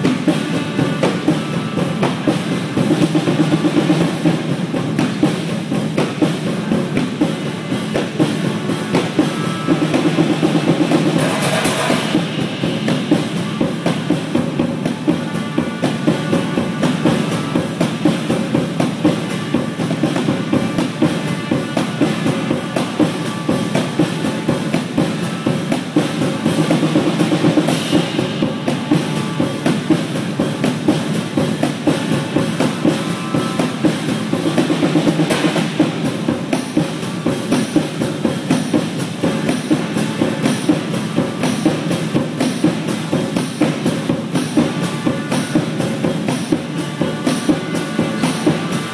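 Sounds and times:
cymbals ringing: 0.0s - 48.9s
rapid drum strokes: 0.0s - 48.9s.

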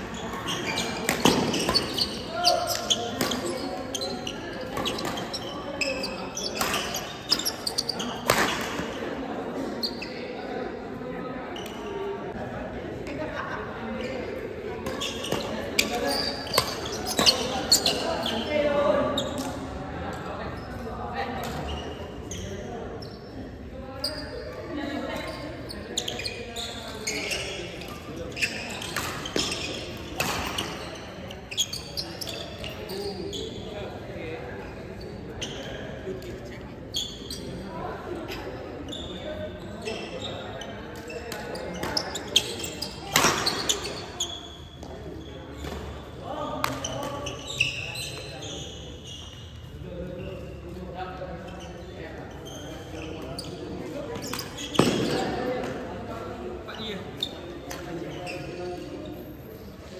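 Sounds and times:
rackets hitting shuttlecock: 0.9s - 2.0s, 54.1s - 55.8s.

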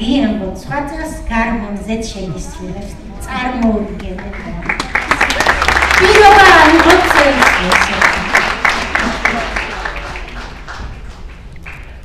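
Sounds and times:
audience clapping: 3.6s - 12.0s.

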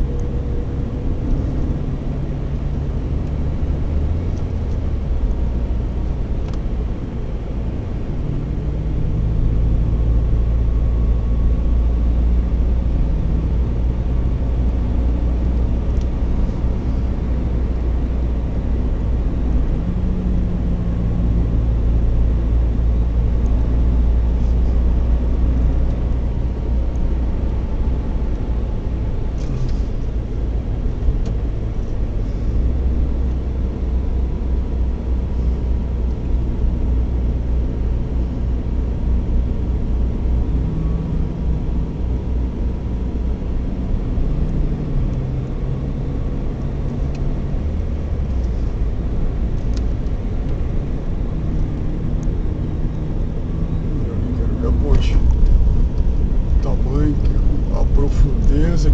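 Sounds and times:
car engine and tyre drone: 0.0s - 58.9s.

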